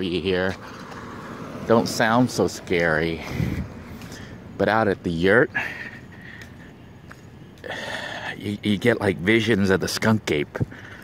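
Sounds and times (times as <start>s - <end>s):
crickets trilling: 0.0s - 11.0s
faint outdoor hiss: 0.0s - 11.0s
rush of noise: 0.6s - 4.6s.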